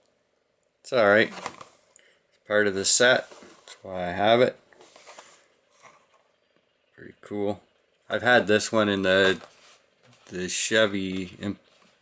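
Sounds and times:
plastic packaging rustling: 1.2s - 1.9s.

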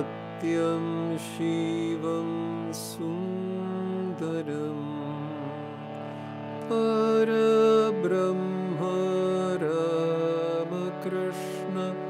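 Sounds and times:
man singing: 0.0s - 6.0s, 6.6s - 12.0s
harmonium playing: 0.0s - 12.0s.

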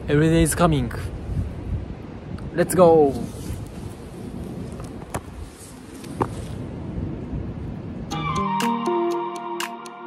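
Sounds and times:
wind rumble: 0.0s - 8.4s.

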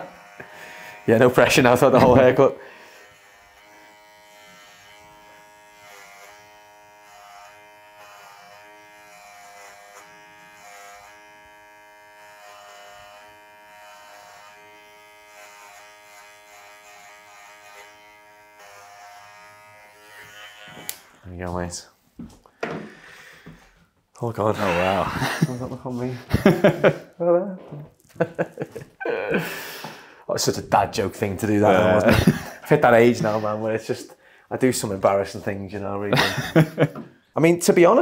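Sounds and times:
hair clippers buzzing: 0.0s - 21.2s, 31.4s - 33.7s, 36.2s - 37.0s.

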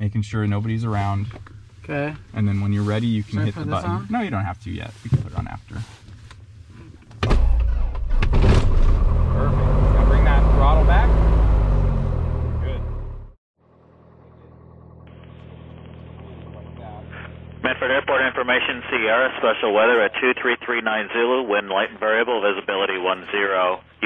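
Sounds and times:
muffled engine hum: 5.2s - 18.2s
aircraft engine starting and running: 7.3s - 17.7s.

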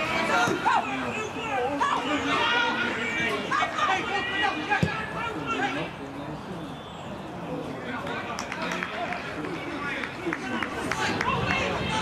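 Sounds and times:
players shouting: 0.0s - 6.0s, 7.8s - 12.0s.

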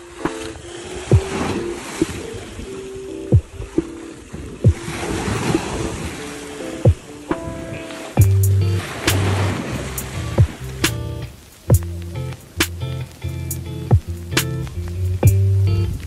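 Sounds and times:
small waves breaking against a wall: 0.0s - 8.2s, 8.8s - 10.6s
lo-fi music with kick drum: 0.0s - 16.0s.

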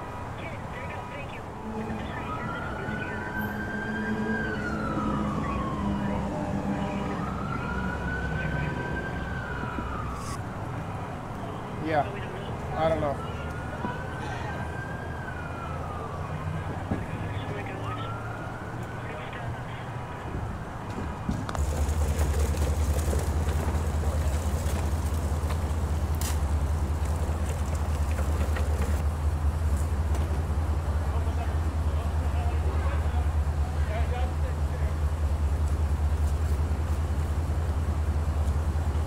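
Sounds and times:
faint voices: 0.3s - 9.0s, 11.0s - 20.9s
fire engine diesel engine idling: 21.5s - 39.0s.

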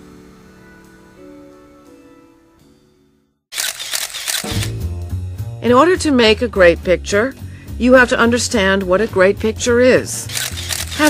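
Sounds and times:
camera shutter clicks: 3.5s - 4.7s, 10.3s - 11.0s.

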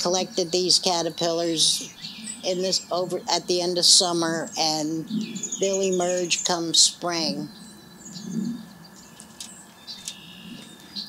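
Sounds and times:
faint bird chirps: 7.2s - 11.0s.

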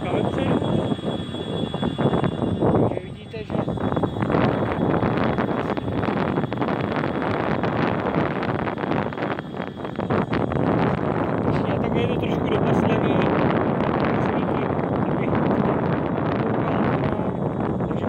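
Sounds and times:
electric scooter riding: 0.0s - 11.6s
wind buffeting microphone: 0.0s - 18.0s.

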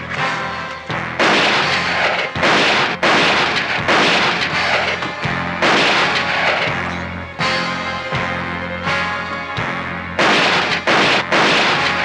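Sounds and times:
loud gunshots with ringing tail: 1.2s - 6.9s, 10.2s - 12.0s.

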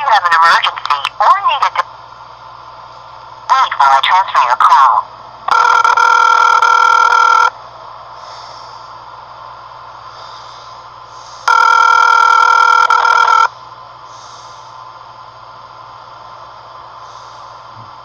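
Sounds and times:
telephone line hiss: 5.5s - 7.6s, 11.4s - 13.6s
telephone ringback tone: 5.5s - 7.6s, 11.5s - 13.5s.

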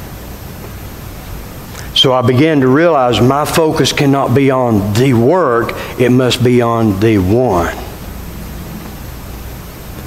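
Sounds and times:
low hum: 0.0s - 10.0s
steady hiss: 0.0s - 10.0s.

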